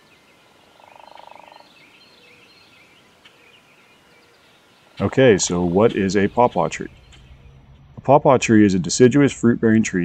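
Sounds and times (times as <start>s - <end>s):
faint birds chirping: 0.0s - 10.0s.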